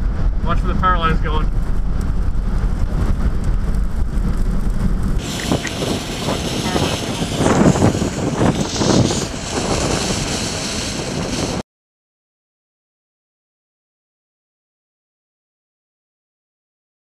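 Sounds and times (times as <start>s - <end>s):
heavy low rumble: 0.0s - 11.6s
hissing gusty wind: 0.0s - 11.6s
storm wind buffeting microphone: 0.0s - 11.6s.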